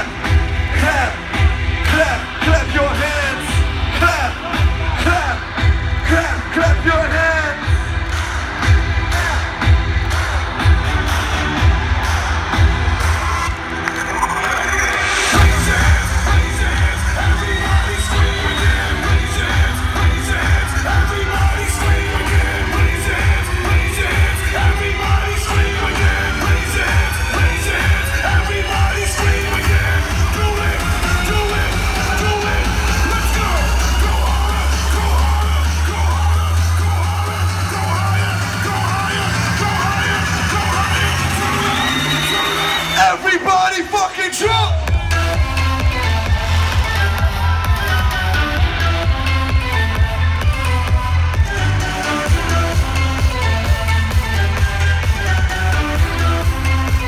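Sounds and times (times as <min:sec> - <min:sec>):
crowd yelling: 0:00.0 - 0:57.0
electronic dance music: 0:00.0 - 0:57.0.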